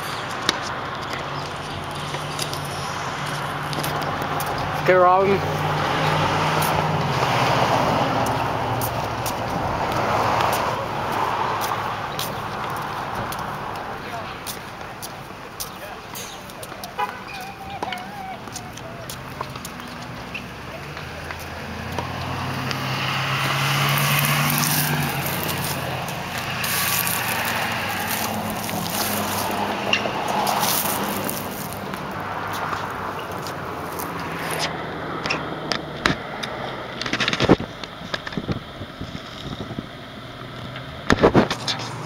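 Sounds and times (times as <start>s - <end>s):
camera rubbing against clothing: 24.0s - 34.7s.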